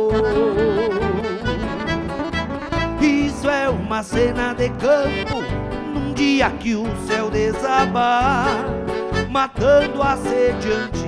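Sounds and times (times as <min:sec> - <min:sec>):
acoustic guitars playing folk: 0:00.0 - 0:11.0
pulsing bass line: 0:00.0 - 0:11.0.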